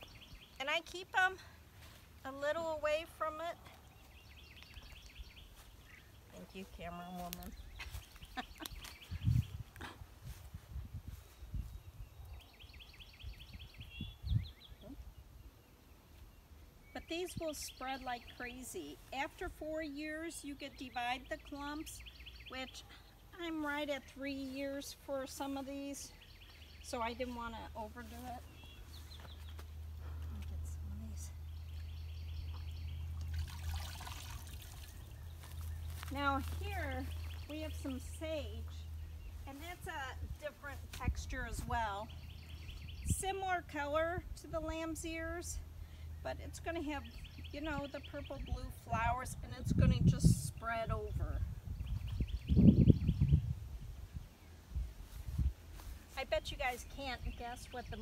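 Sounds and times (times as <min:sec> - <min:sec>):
songbird chirping: 0:00.0 - 0:58.0
water trickling and splashing: 0:32.5 - 0:35.7.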